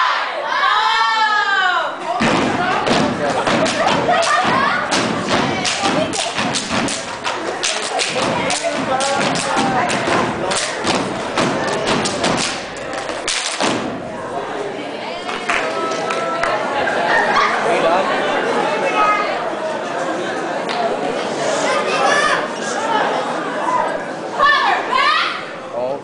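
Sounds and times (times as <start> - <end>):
voices shouting: 0.0 - 10.9
stomps and claps on stage: 2.2 - 14.0.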